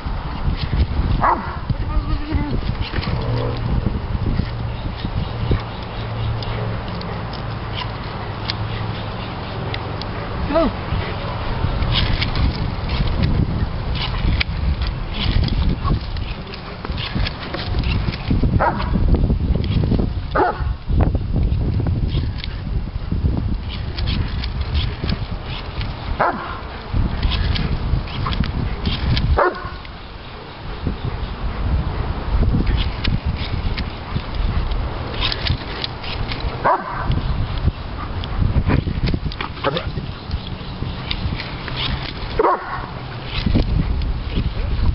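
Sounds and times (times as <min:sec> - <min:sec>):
steady low rumble: 0:00.0 - 0:44.9
dog barking: 0:01.2 - 0:01.6, 0:20.4 - 0:20.7, 0:26.2 - 0:26.6, 0:29.4 - 0:29.8, 0:36.6 - 0:37.1, 0:42.4 - 0:42.9.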